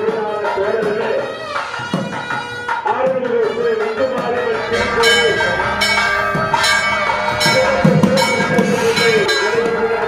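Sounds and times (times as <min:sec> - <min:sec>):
temple bell ringing: 0:03.9 - 0:10.0.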